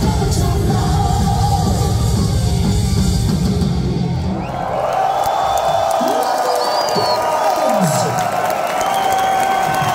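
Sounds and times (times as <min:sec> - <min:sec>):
live metal band playing: 0:00.0 - 0:04.4
crowd cheering and yelling: 0:01.6 - 0:09.9
high whistle: 0:06.0 - 0:07.4.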